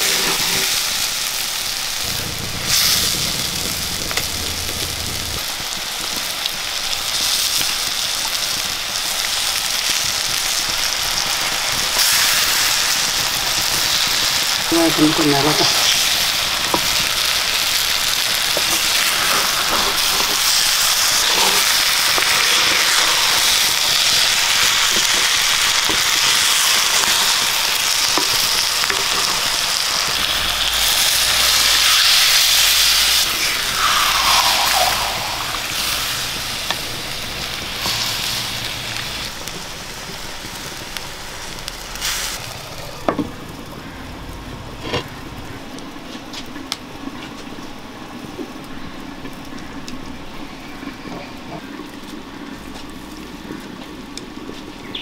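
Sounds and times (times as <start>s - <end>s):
fish sizzling in hot oil: 0.0s - 44.0s, 49.5s - 55.0s
water poured into pot: 30.7s - 36.6s.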